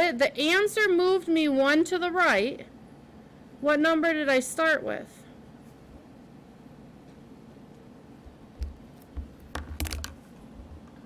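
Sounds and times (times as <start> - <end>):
clicks and knocks on a desk: 8.6 - 11.0.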